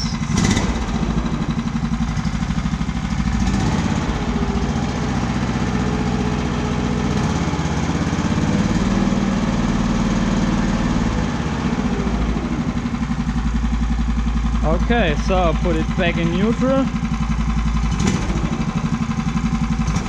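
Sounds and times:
small petrol engine running: 0.0 - 20.0.

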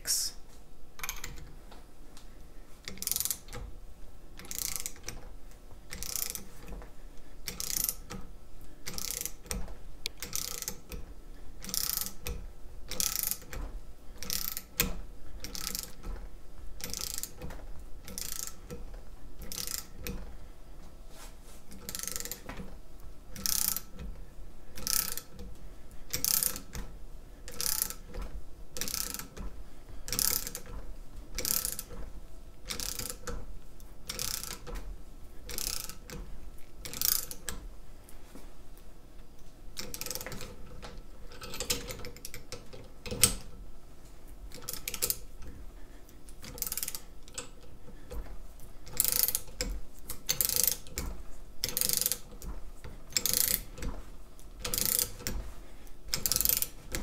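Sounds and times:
ratchet wrench clicking: 2.9 - 3.5, 4.4 - 5.2, 5.9 - 6.5, 7.5 - 8.2, 8.8 - 11.0, 11.6 - 13.6, 14.2 - 16.1, 16.8 - 17.5, 18.1 - 18.8, 19.4 - 20.2, 21.8 - 22.4, 23.4 - 24.0, 24.8 - 25.4, 26.1 - 26.8, 27.5 - 28.2, 28.8 - 29.4, 30.1 - 30.7, 31.4 - 32.0, 32.7 - 33.4, 34.1 - 34.7, 35.5 - 36.2, 36.8 - 37.6, 39.8 - 40.5, 44.6 - 45.2, 46.5 - 47.6, 48.9 - 51.0, 51.6 - 52.3, 53.2 - 53.8, 54.6 - 55.4, 56.1 - 57.0.

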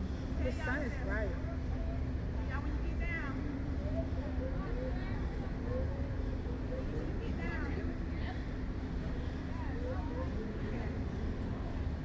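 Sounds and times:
faint voices: 0.0 - 12.0
steady low hum and rumble: 0.0 - 12.0.

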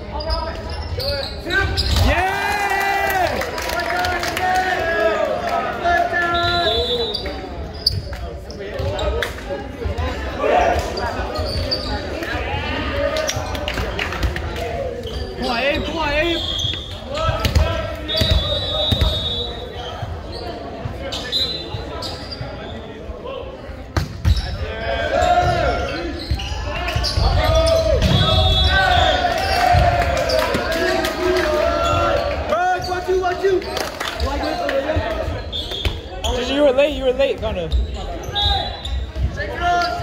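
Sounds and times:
people talking and calling out: 0.0 - 40.0.

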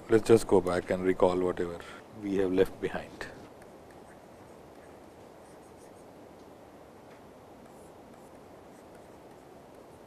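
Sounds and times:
low background hiss: 0.0 - 10.0
stylus tapping on tablet screen: 7.1 - 9.9.

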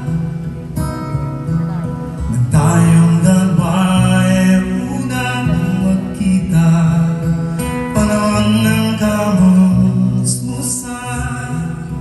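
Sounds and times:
acoustic guitar strumming: 0.0 - 12.0
man singing: 2.2 - 12.0.

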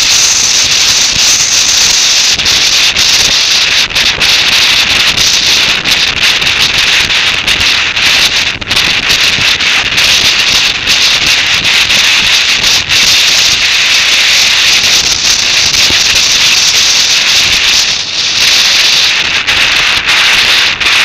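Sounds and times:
wind rush on microphone: 0.0 - 21.0.

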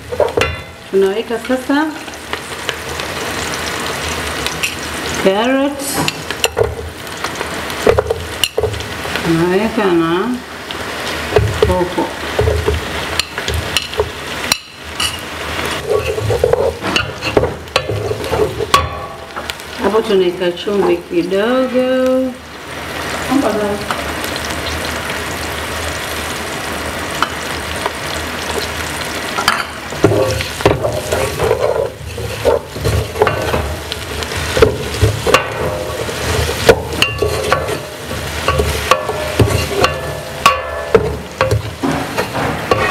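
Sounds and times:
pot being stirred: 0.0 - 9.2, 11.3 - 19.6, 28.4 - 42.9
oil sizzling in pot: 0.0 - 42.9
spatula scraping metal pot: 15.0 - 18.8, 30.0 - 33.6, 34.6 - 42.9
metal spoon clinking against pot: 37.0 - 37.8, 38.4 - 41.6.

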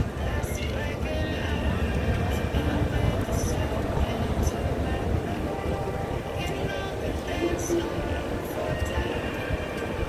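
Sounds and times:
indistinct voices: 0.0 - 10.0
low rumble of vehicles: 0.0 - 10.0.

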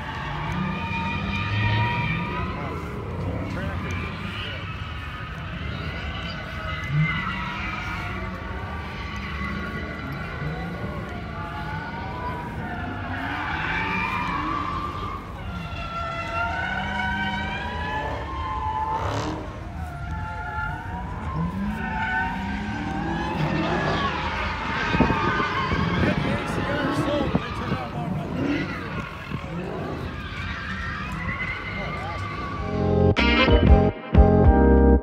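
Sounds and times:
car engines revving: 0.0 - 33.2.

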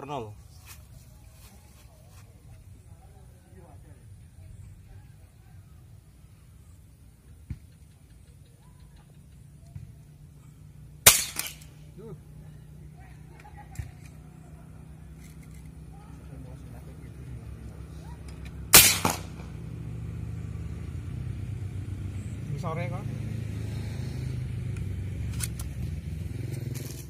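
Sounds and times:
air rifle shots: 11.0 - 11.8, 18.7 - 19.6.

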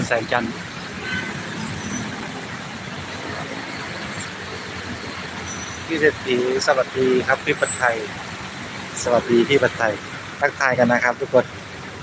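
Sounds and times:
heavy city road traffic: 0.0 - 12.0.

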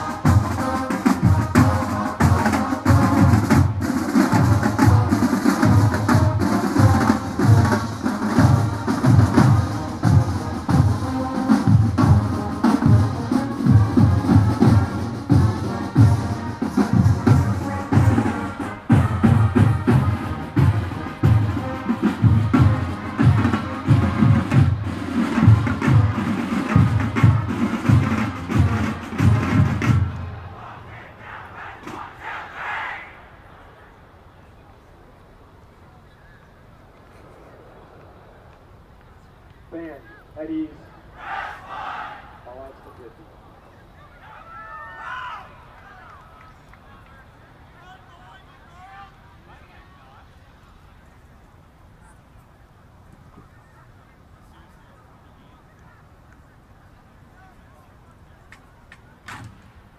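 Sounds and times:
bass and snare drum cadence: 0.0 - 33.6, 58.4 - 59.9.

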